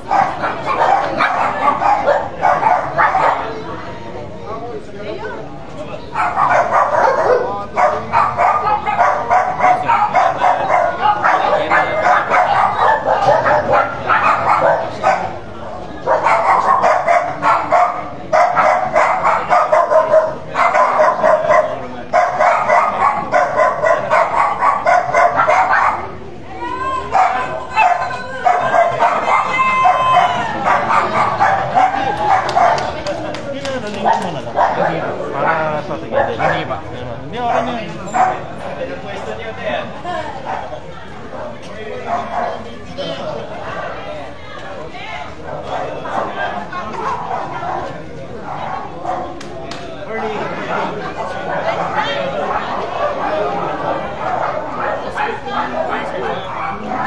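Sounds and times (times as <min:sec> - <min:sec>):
dog barking: 0:00.0 - 0:03.6, 0:06.1 - 0:26.2, 0:27.1 - 0:33.0, 0:34.0 - 0:36.8, 0:37.5 - 0:38.5, 0:42.1 - 0:42.6, 0:45.5 - 0:49.4, 0:50.7 - 0:57.0
people talking: 0:00.0 - 0:57.0.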